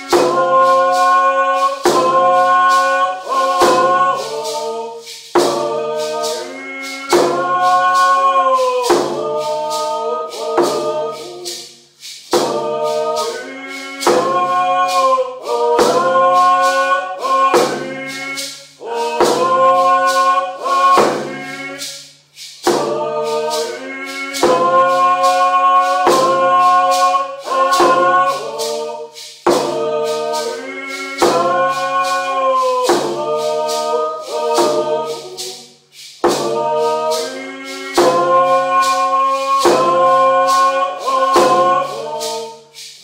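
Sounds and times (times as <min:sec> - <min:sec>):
steady drumbeat: 0:00.0 - 0:43.0
voices singing long phrases: 0:00.0 - 0:43.0.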